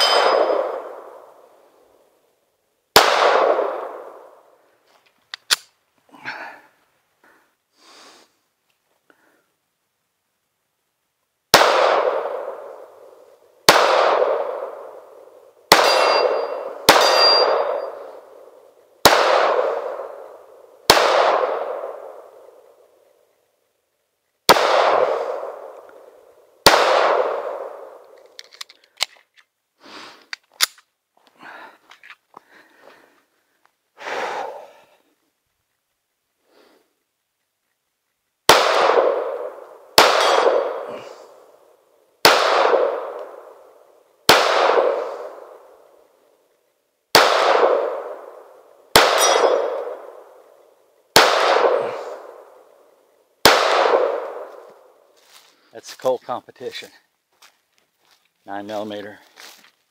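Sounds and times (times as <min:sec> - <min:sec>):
ringing metal target clang: 0:00.0 - 0:00.9, 0:15.7 - 0:18.1, 0:40.1 - 0:40.9, 0:49.0 - 0:50.0
pistol shots: 0:00.0 - 0:01.4, 0:03.0 - 0:04.4, 0:11.5 - 0:13.1, 0:13.7 - 0:22.6, 0:24.5 - 0:26.0, 0:26.6 - 0:28.1, 0:38.5 - 0:41.4, 0:42.2 - 0:45.8, 0:47.1 - 0:52.8, 0:53.4 - 0:54.9
gun handling noises: 0:04.9 - 0:05.8, 0:28.0 - 0:29.6, 0:30.2 - 0:32.6
small metallic clicks: 0:28.1 - 0:29.6.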